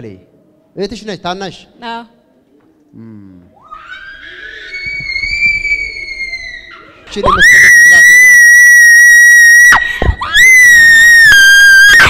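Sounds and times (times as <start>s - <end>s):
woman shrieking: 3.6s - 12.0s.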